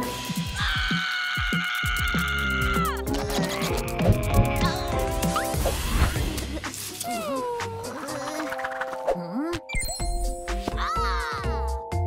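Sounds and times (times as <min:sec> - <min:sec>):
dramatic cartoon music: 0:00.0 - 0:12.0
cartoon baby screaming: 0:00.6 - 0:04.9.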